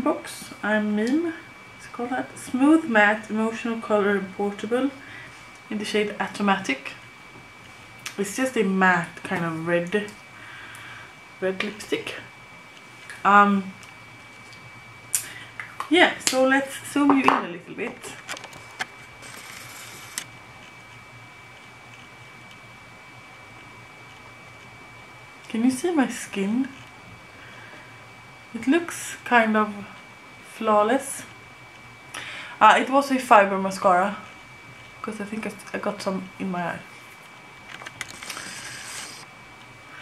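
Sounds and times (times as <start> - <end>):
faint high whine: 0.0 - 40.0
camera handling rustling: 18.2 - 20.2, 37.7 - 39.2.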